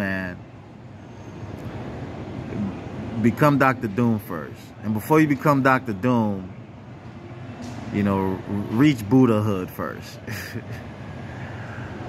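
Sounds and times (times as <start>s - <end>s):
faint rumbling and hissing: 0.0s - 12.0s.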